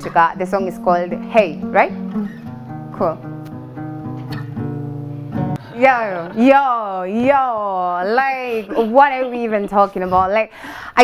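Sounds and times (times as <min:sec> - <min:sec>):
acoustic guitar chord ringing: 0:00.3 - 0:06.4.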